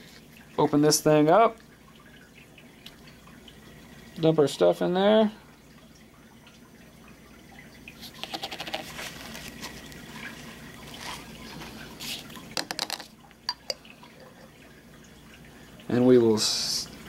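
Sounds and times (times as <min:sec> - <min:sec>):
liquid glugging into cup: 0:07.0 - 0:15.4.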